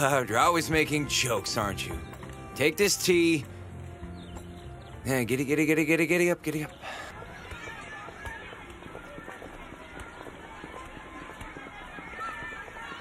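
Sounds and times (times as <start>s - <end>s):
running footsteps: 0.0s - 13.0s
children chattering and calling: 6.7s - 13.0s.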